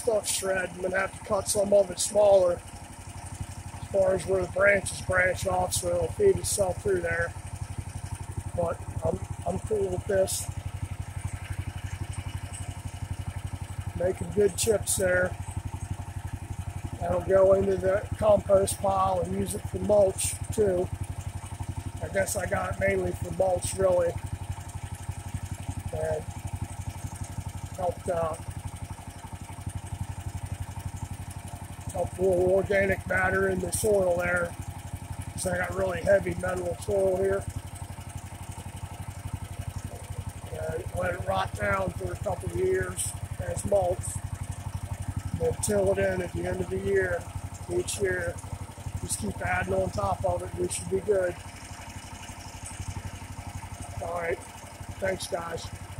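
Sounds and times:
chipper shredder engine running: 0:00.0 - 0:55.9.

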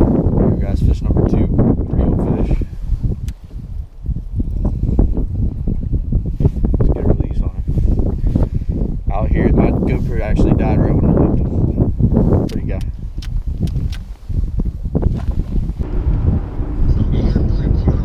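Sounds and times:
wind buffeting microphone: 0:00.0 - 0:18.0
man talking indistinctly: 0:16.9 - 0:18.0.

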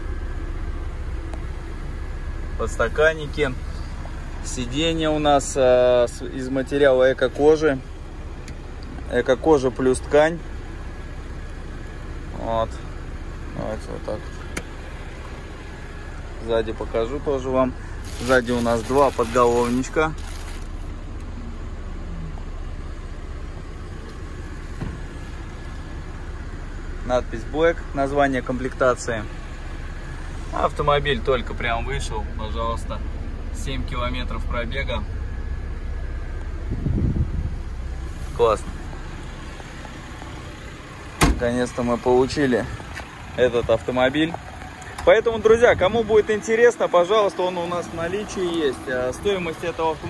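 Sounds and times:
steady low rumble: 0:00.0 - 0:50.0.

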